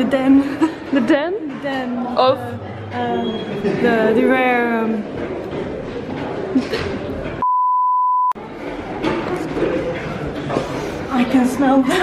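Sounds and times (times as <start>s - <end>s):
steady test tone beep: 7.4s - 8.4s.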